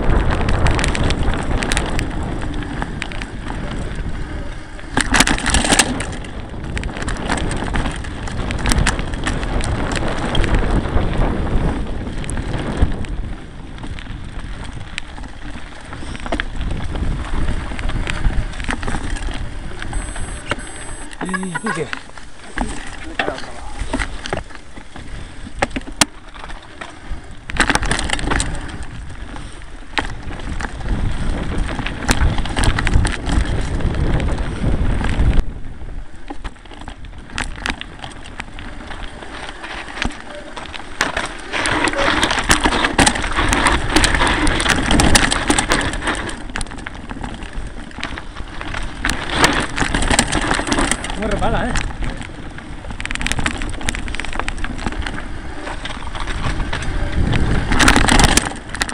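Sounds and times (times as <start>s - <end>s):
bike and camera mount rattling: 0.0s - 58.9s
wind rumbling on microphone: 0.0s - 58.9s
tyres crunching over stones: 12.2s - 35.4s, 36.2s - 58.9s.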